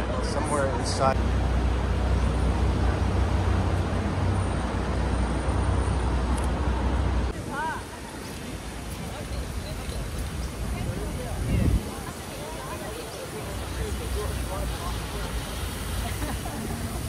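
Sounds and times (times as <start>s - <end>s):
street traffic rumble: 0.0s - 17.0s.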